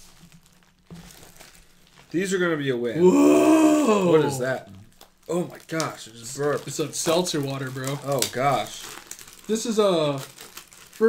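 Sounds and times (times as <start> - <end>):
packaging crinkling and rustling: 0.0 - 2.4, 4.9 - 11.0.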